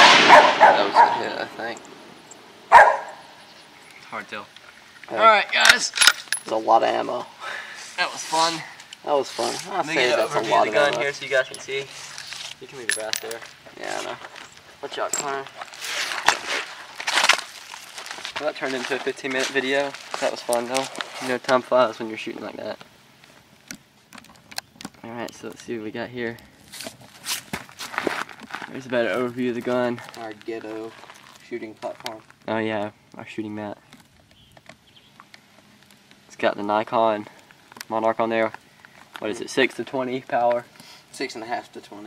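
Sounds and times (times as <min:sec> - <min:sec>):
hissing rustling noise: 0:07.4 - 0:10.5, 0:11.2 - 0:12.7, 0:13.4 - 0:21.5.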